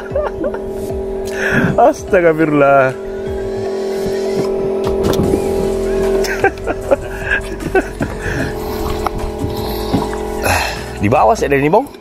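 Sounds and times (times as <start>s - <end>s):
small engine running: 0.0s - 12.0s.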